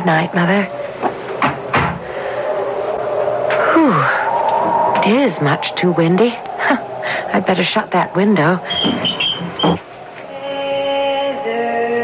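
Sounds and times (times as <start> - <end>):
whistling wind howl: 0.0 - 12.0
door shutting: 1.0 - 2.0, 8.7 - 9.9.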